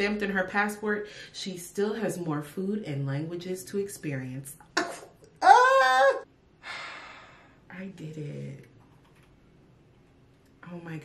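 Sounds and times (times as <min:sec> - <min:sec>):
woman squealing: 0:05.4 - 0:06.3
breathy gasp: 0:06.6 - 0:07.6.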